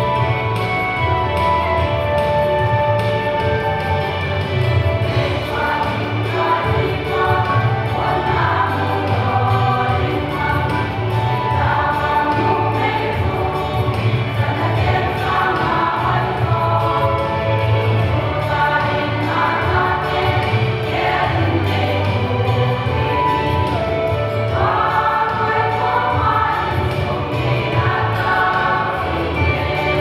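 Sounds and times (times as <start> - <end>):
deep bass accompaniment: 0.0 - 30.0
women's choir singing a hymn: 4.8 - 30.0.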